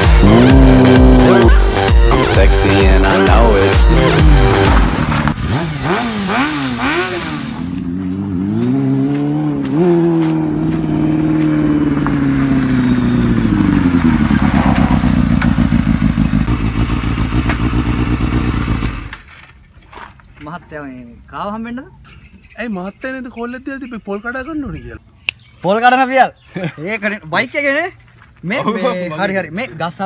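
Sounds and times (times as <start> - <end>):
motorcycle engine revving: 0.0 - 19.2
motorcycle engine idling: 10.6 - 19.1.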